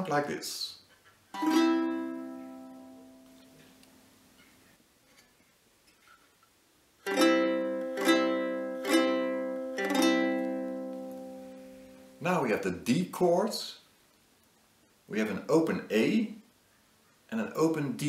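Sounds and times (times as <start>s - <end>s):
lyre strummed: 1.3s - 5.4s, 7.0s - 12.2s.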